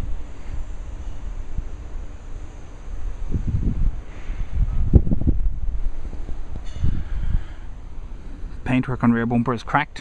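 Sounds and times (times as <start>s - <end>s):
wind buffeting microphone: 0.0s - 9.1s.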